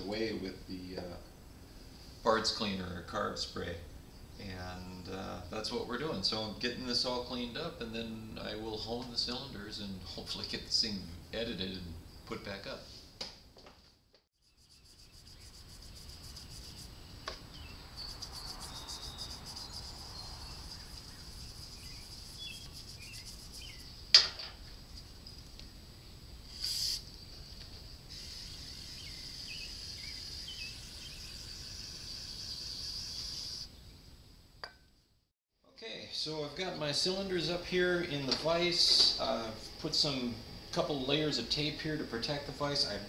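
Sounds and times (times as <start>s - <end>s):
faint bird chirps: 14.4s - 24.1s, 26.0s - 34.0s
crickets chirring: 14.4s - 34.5s
short hiss: 26.4s - 27.2s, 28.1s - 30.5s.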